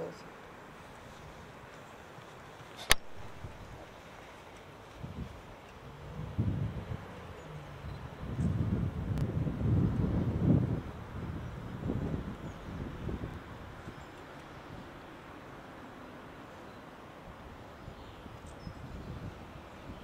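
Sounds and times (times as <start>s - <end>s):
wind buffeting microphone: 3.0s - 15.1s, 17.3s - 20.0s.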